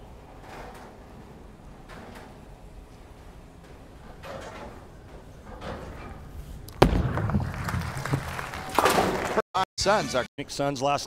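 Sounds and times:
bowling ball crashing into pins: 6.7 - 9.4.

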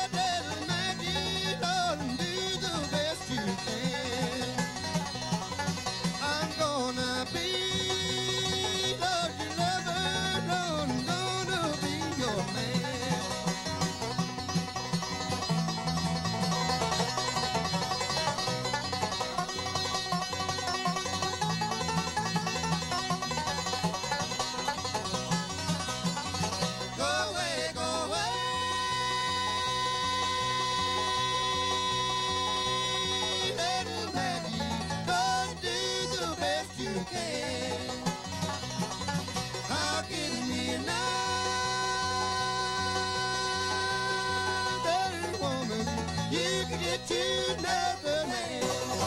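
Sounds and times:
person singing: 0.0 - 4.6, 6.1 - 13.4, 26.9 - 38.1, 39.5 - 49.0
banjo picking: 0.0 - 49.0
bluegrass band playing: 0.0 - 49.0
guitar: 0.0 - 49.0
mandolin: 0.0 - 49.0.

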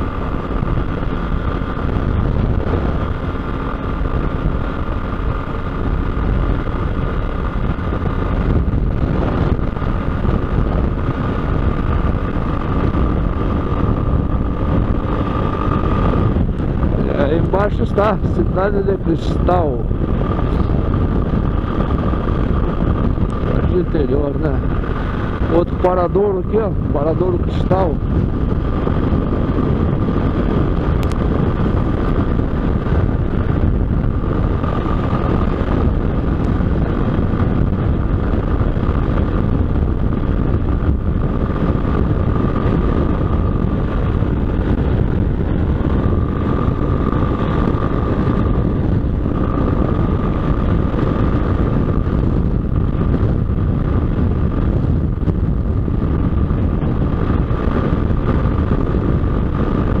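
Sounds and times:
motorcycle engine and road drone: 0.0 - 60.0
steady high whine: 0.0 - 60.0
wind rushing over microphone: 0.0 - 60.0.

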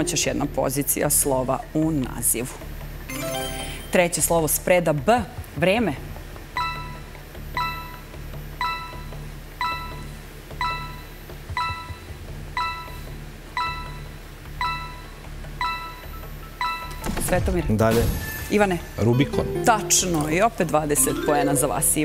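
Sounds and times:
countdown timer pings: 6.6 - 17.0, 19.1 - 22.0
low music bed: 19.0 - 22.0.

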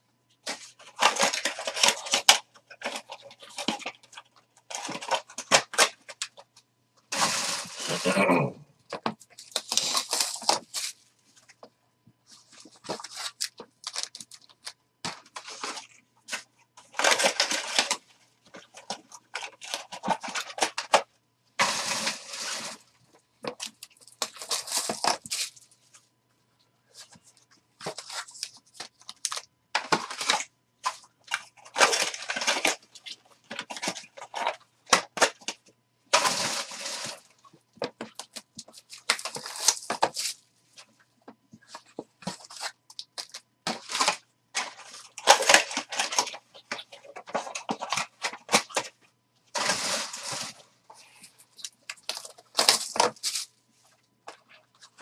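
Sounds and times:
plastic and foil wrapping crinkling: 0.4 - 26.1, 26.9 - 55.0.

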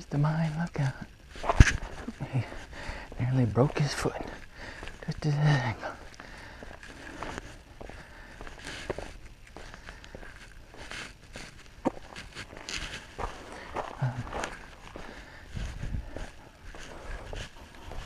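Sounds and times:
footsteps on asphalt: 0.4 - 18.0.

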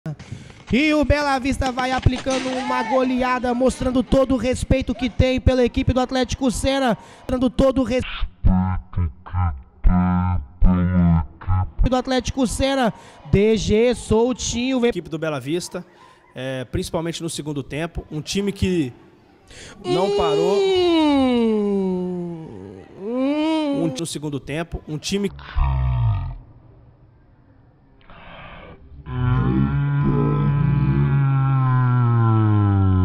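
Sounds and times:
man holding a long vowel: 19.7 - 24.1.

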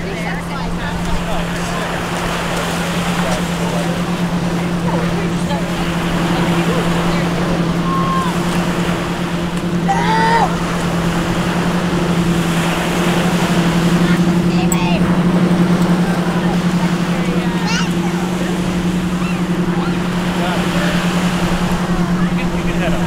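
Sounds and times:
low motor hum: 0.0 - 23.0
people's voices: 0.0 - 23.0
small waves washing on shore: 0.0 - 23.0
wind: 0.0 - 23.0.

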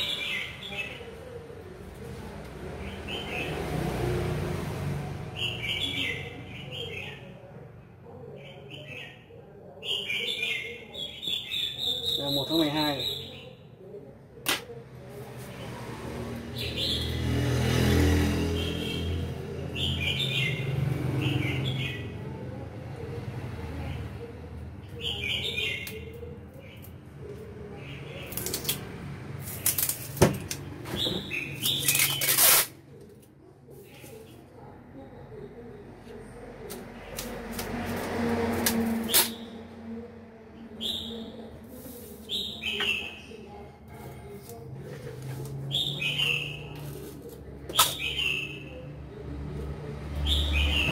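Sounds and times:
recorded bird chirps over speakers: 0.0 - 1.6, 2.7 - 3.8, 5.3 - 14.2, 16.5 - 17.8, 18.4 - 22.2, 24.8 - 28.8, 30.8 - 32.6, 39.1 - 39.8, 40.6 - 44.9, 45.6 - 49.0, 50.1 - 50.9
whistled bird call over loudspeaker: 10.0 - 13.5, 40.8 - 41.3.

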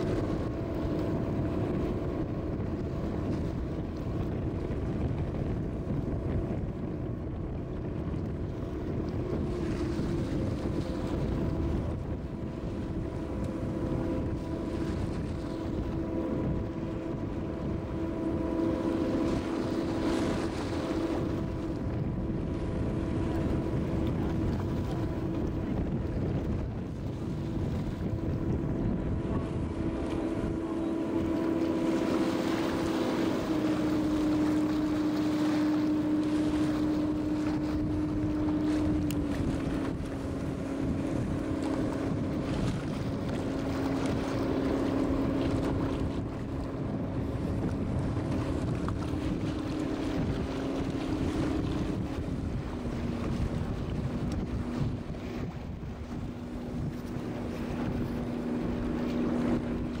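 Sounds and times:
boat engine humming: 0.0 - 60.0
water rushing along hull: 0.0 - 60.0
wind buffeting microphone: 0.0 - 60.0.

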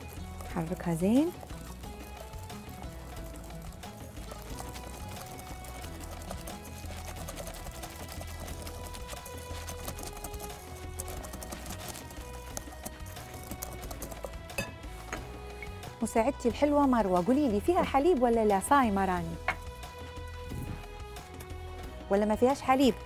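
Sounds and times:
whisk clicking against glass bowl: 0.0 - 14.4
background music: 0.0 - 23.0.

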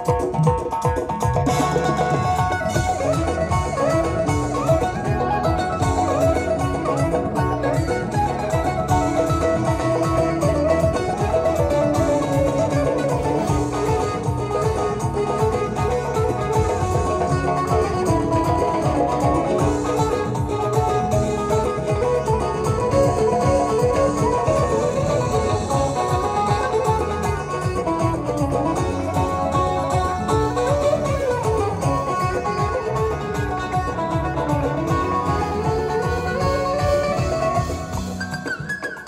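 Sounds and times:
steady low drum beat: 0.0 - 38.2
keyboard accompaniment: 0.0 - 39.0
plucked lute melody: 0.0 - 39.0.

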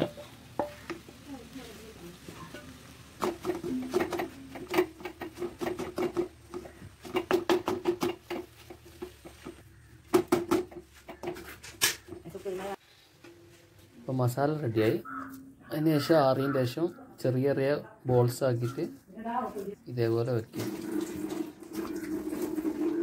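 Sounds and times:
wooden spatula scraping a metal pan: 0.0 - 12.8.

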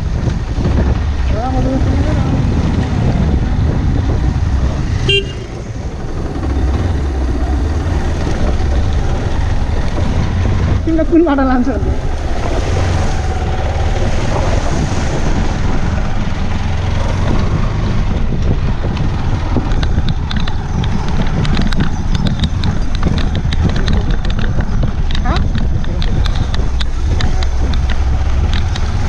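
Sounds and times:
gravel crackling under tyres: 0.0 - 29.0
motorcycle engine running: 0.0 - 29.0
wind on microphone: 0.0 - 29.0.

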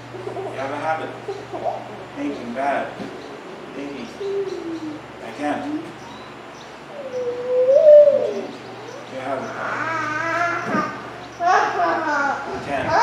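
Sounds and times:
bird cooing: 0.0 - 12.4.

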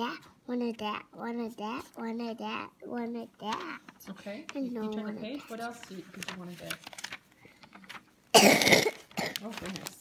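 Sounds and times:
person coughing: 8.3 - 9.4.

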